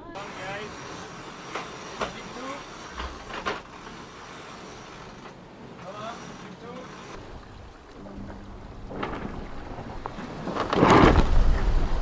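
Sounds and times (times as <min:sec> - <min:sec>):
water rushing past hull: 0:04.1 - 0:12.0
wind on microphone: 0:07.2 - 0:12.0.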